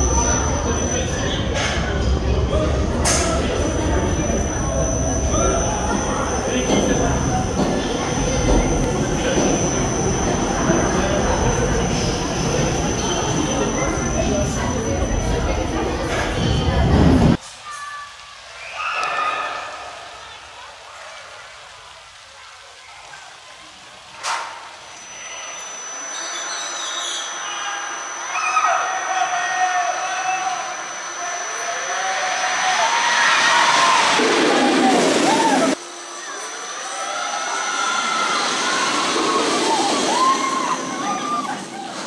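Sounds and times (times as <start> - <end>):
roller coaster rumbling on track: 0.0 - 17.4, 32.0 - 35.8, 37.3 - 42.0
people's voices and shouts: 0.0 - 23.8, 25.0 - 42.0.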